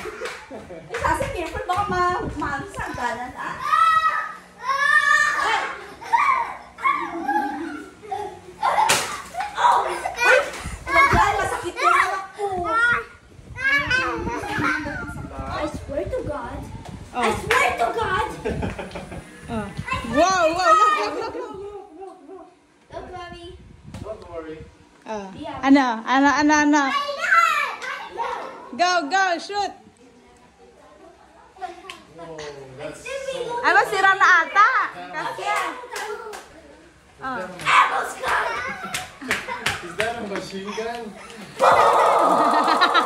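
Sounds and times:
children talking excitedly: 0.0 - 23.6, 25.2 - 32.1, 32.8 - 43.0
child's high-pitched cry: 3.6 - 7.2.

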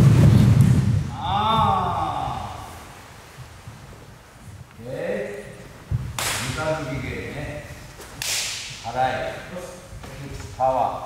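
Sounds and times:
karate uniforms snapping: 6.1 - 6.8, 8.0 - 8.9.

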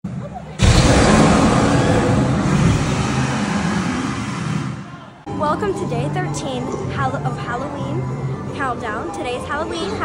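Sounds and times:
rushing burst of flame: 0.6 - 4.9.

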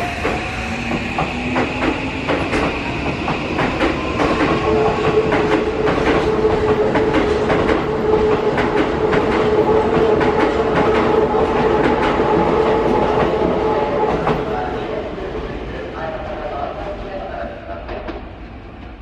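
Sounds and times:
train wheels clacking over rail joints: 0.2 - 14.4.

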